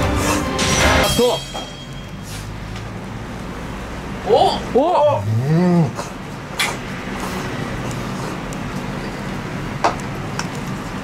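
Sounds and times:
shop room rumble and hum: 0:00.0 - 0:11.0.

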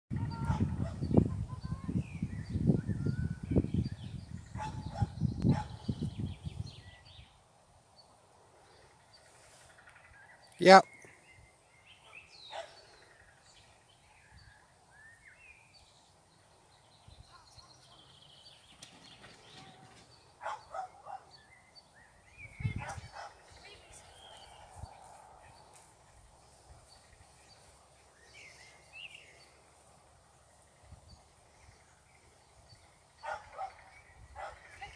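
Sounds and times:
wind buffeting microphone: 0:00.1 - 0:07.3, 0:22.3 - 0:27.4
birds chirping: 0:00.1 - 0:34.9
small dog barking: 0:04.6 - 0:05.8, 0:20.4 - 0:21.3, 0:33.2 - 0:33.8, 0:34.4 - 0:34.6.

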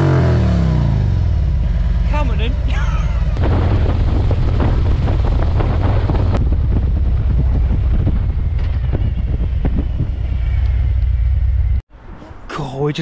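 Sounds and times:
wind buffeting microphone: 0:02.1 - 0:12.2.

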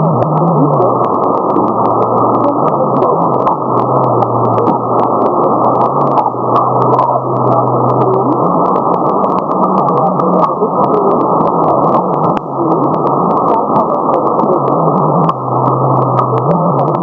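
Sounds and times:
low steady radio tone: 0:00.0 - 0:17.0
radio hiss: 0:00.0 - 0:17.0
sharp static crackles: 0:00.0 - 0:17.0.

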